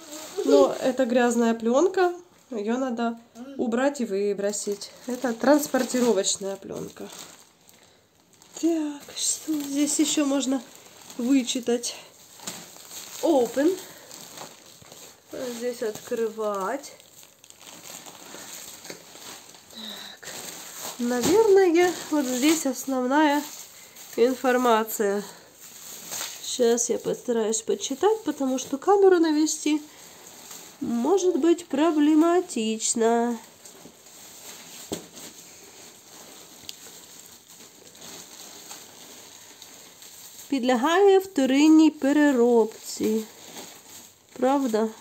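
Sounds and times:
plastic packaging rustling: 0.0s - 45.0s.

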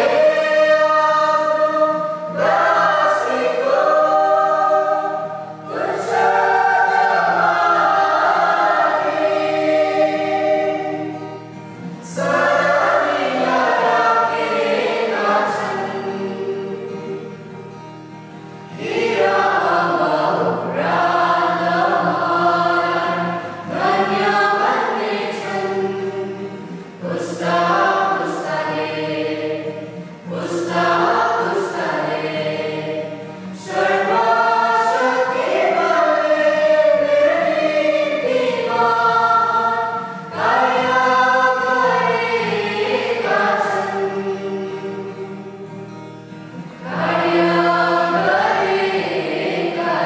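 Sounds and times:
choir singing: 0.0s - 17.7s, 18.7s - 45.9s, 46.5s - 50.0s.

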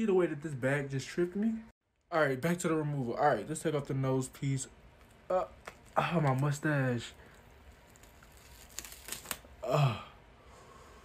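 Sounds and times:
sticky tearing of peeled skin piece: 5.0s - 6.6s, 7.2s - 9.6s
sharp crackles: 5.0s - 9.6s.

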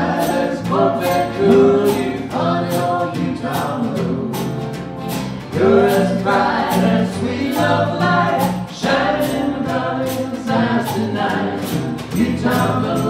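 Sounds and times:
light percussion: 0.0s - 13.0s
vocal group singing in harmony: 0.0s - 13.0s.

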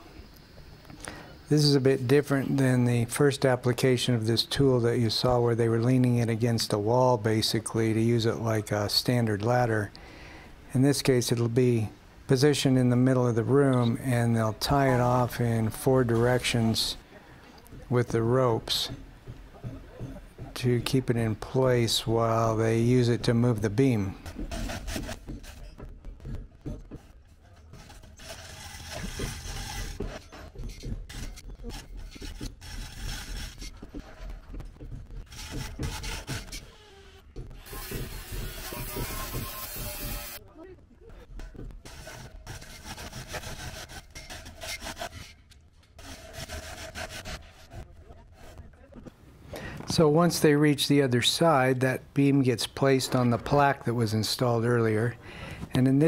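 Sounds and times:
steel beam scraping on concrete: 27.7s - 33.8s, 37.6s - 40.4s, 41.9s - 47.8s.

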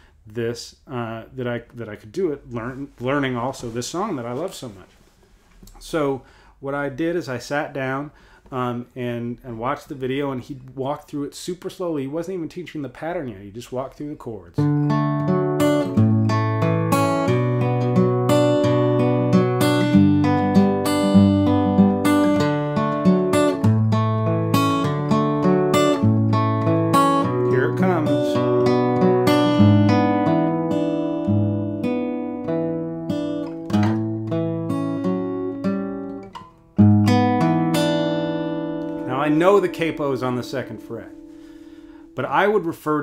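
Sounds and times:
fingerpicked acoustic guitar: 14.6s - 42.6s.

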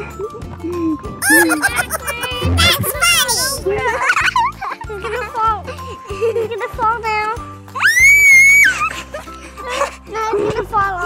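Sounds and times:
background music: 1.2s - 10.1s.

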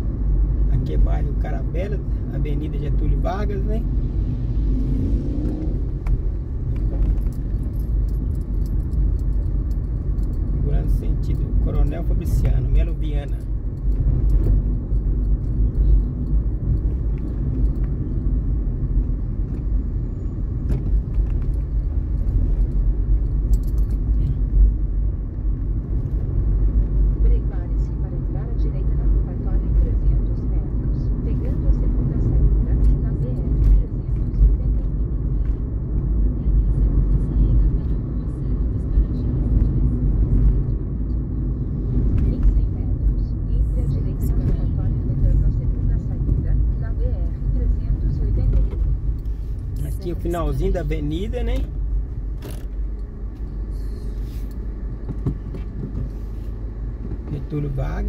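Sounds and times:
car engine and tyre rumble: 0.0s - 58.0s.

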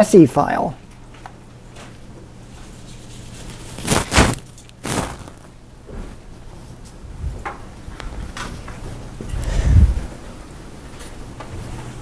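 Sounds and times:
steady low hum: 0.7s - 12.0s
loud short rustles: 3.4s - 5.6s.

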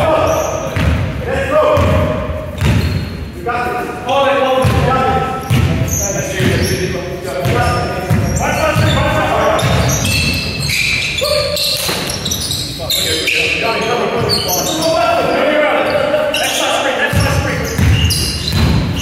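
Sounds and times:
players calling out: 0.0s - 19.0s
basketball bouncing on wooden floor: 1.7s - 3.1s, 4.6s - 6.7s, 7.4s - 10.4s, 17.1s - 19.0s.

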